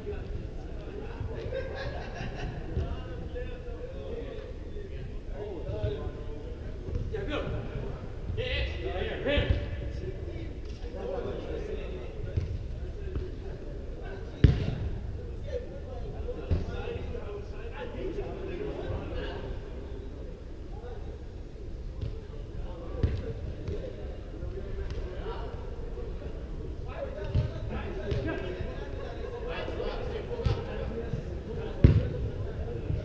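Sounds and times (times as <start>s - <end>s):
football kicked with echoing thud: 12.2s - 13.4s, 14.4s - 15.0s, 27.2s - 28.3s, 30.4s - 30.7s, 31.7s - 32.3s
soccer ball kick thud: 14.4s - 14.9s, 31.8s - 32.2s.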